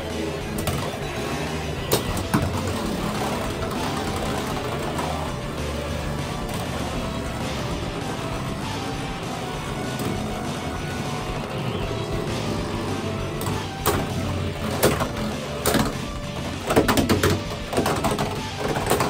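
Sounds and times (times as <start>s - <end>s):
spinning tops whirring: 0.0s - 19.0s.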